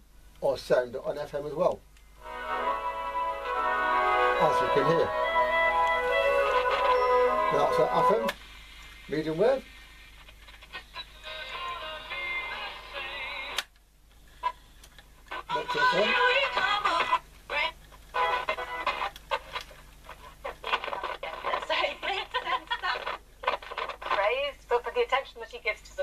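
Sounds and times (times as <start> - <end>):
music from small radio speaker: 2.2 - 8.4, 10.6 - 13.7, 15.3 - 24.2.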